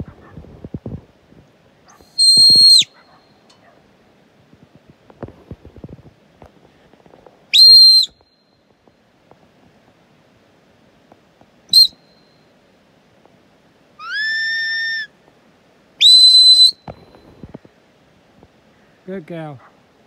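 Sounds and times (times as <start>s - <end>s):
shepherd's whistle blasts: 2.1s - 3.0s, 7.5s - 8.4s, 11.7s - 12.4s, 14.0s - 15.1s, 16.0s - 17.0s.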